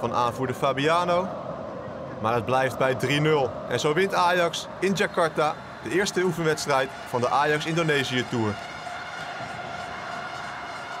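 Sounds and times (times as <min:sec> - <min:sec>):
stadium crowd roar: 0:00.0 - 0:11.0.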